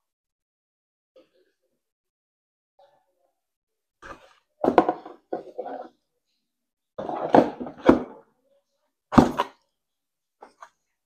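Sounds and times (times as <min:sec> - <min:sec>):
parts knocking on hard surface: 0:04.6 - 0:05.7, 0:07.0 - 0:08.2.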